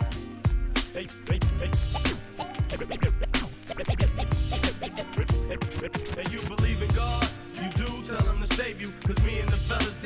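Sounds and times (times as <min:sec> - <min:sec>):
hip-hop beat: 0:00.0 - 0:10.0
record scratching: 0:00.8 - 0:08.5.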